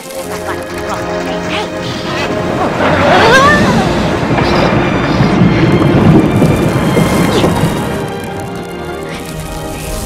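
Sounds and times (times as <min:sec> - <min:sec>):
soundtrack music: 0:00.0 - 0:10.0
deep rumble like thunder: 0:01.0 - 0:10.0.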